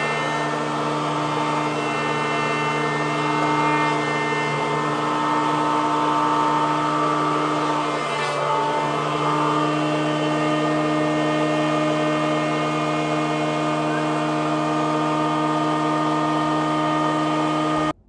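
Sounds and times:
electric planer whining: 0:00.0 - 0:18.0
planer cutting wood: 0:00.0 - 0:18.0.

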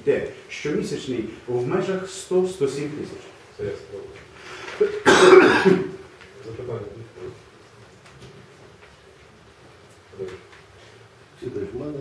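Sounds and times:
person coughing: 0:04.8 - 0:06.0.

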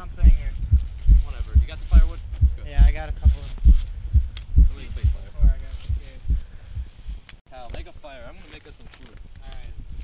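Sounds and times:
fast heartbeat thumps: 0:00.0 - 0:07.2.

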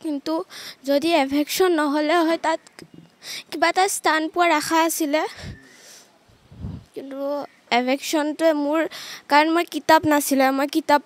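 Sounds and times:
woman talking into a microphone: 0:03.5 - 0:05.6, 0:06.7 - 0:11.0.

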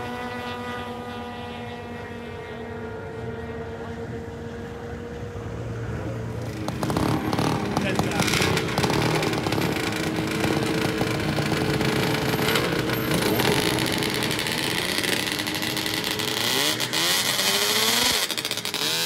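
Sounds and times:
snowmobile engine revving: 0:00.0 - 0:19.0
snowmobile engines running: 0:00.0 - 0:19.0.

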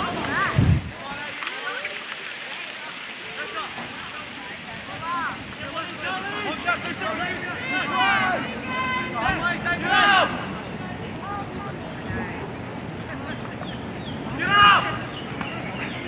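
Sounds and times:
voices shouting: 0:04.8 - 0:16.0.

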